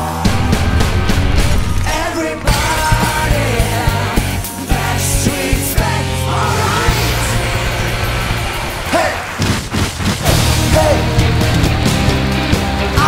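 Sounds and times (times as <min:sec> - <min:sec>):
heavy rock music: 0:00.0 - 0:13.0.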